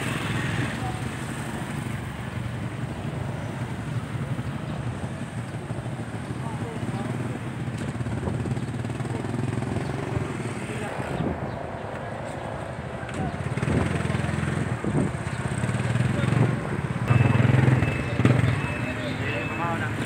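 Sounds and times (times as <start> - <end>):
faint voices: 0.0 - 20.0
small engines rumbling: 0.0 - 20.0.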